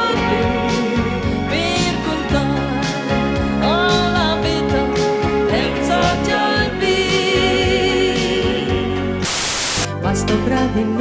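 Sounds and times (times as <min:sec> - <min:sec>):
song with instrumental accompaniment: 0:00.0 - 0:11.0
static hiss burst: 0:09.2 - 0:09.9.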